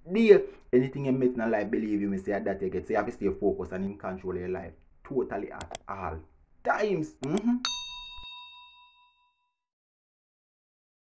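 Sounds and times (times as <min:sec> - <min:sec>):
bell-like ding: 0:07.6 - 0:09.7.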